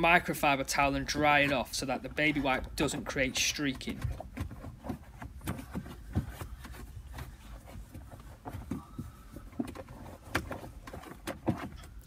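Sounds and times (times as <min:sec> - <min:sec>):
towel rubbing on plastic: 0:03.8 - 0:12.0.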